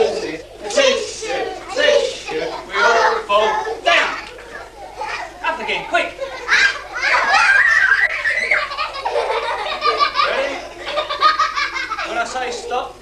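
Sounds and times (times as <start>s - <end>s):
children laughing and squealing: 0.0s - 13.0s.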